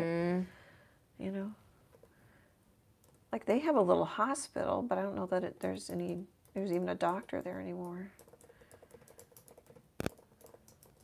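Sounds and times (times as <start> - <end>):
keyboard typing: 5.8 - 11.0.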